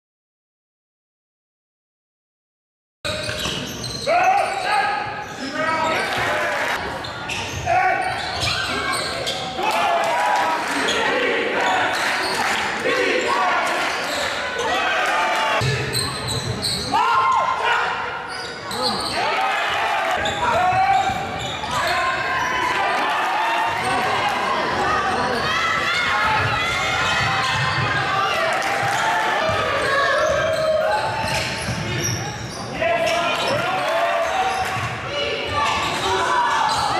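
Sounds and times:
sneakers squeaking: 0:03.1 - 0:09.8, 0:15.6 - 0:17.5, 0:18.2 - 0:22.7, 0:25.1 - 0:36.9.

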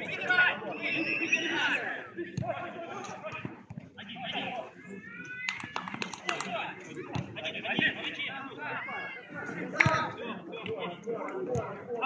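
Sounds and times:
footballers shouting: 0:00.0 - 0:12.0.

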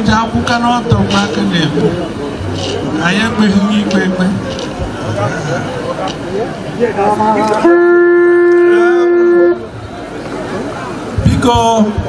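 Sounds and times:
wind instrument long loud note: 0:07.0 - 0:09.8.

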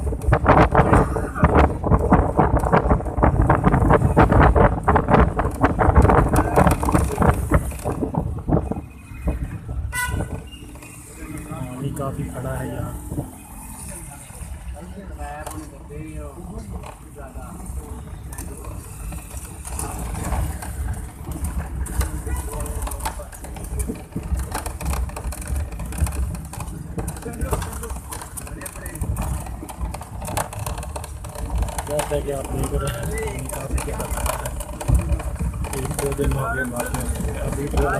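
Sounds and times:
engine and road rumble: 0:00.0 - 0:37.9
clicks and rattles: 0:18.4 - 0:37.9.

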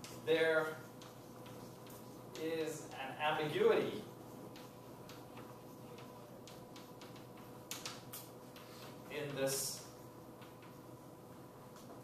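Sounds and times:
chalk tapping and scratching: 0:00.0 - 0:12.0
faint steady hum: 0:00.0 - 0:12.0.

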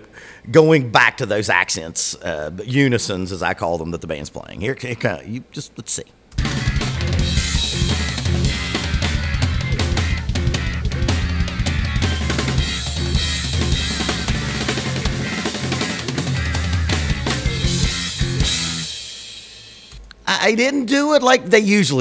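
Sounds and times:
bass guitar: 0:06.4 - 0:19.1
electric guitar: 0:06.4 - 0:19.2
drum fills: 0:06.4 - 0:20.0
cymbal crashes: 0:12.2 - 0:19.9.

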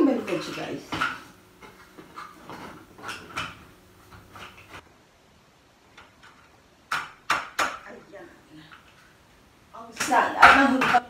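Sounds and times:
metal tubes rattling: 0:00.0 - 0:04.8, 0:09.8 - 0:11.0.

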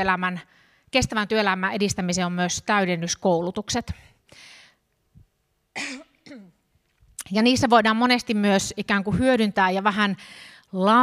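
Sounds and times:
woman clearing her throat: 0:05.8 - 0:06.6.

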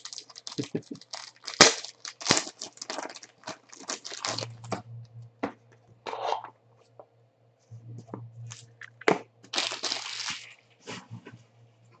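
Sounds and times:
plastic wrapping crinkling: 0:00.0 - 0:04.9, 0:08.5 - 0:10.6.

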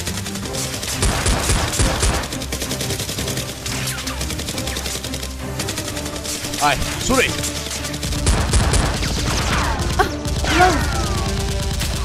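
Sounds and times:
background music: 0:00.0 - 0:12.0
rapid automatic gunfire: 0:00.0 - 0:12.0.

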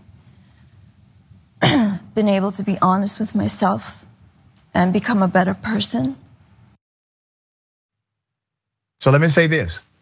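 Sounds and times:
woman clearing her throat: 0:01.6 - 0:02.1.

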